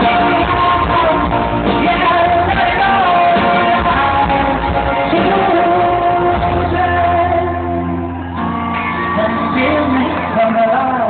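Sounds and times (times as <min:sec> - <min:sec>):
live pop-rock band playing: 0:00.0 - 0:11.0
person singing: 0:00.0 - 0:11.0
crowd shouting: 0:08.1 - 0:10.6.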